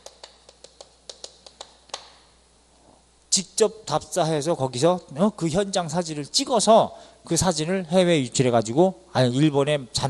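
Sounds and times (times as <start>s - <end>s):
chalk tapping on chalkboard: 0.0s - 2.2s.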